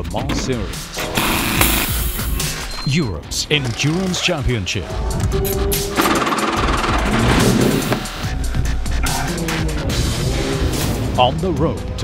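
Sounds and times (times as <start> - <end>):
background music: 0.0 - 12.0
racing car engine revving: 3.5 - 12.0.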